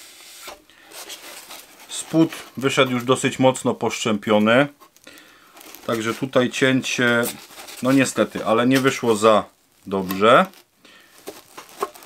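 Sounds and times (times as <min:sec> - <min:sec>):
board rubbing on foam: 0:00.9 - 0:02.8, 0:05.7 - 0:09.2.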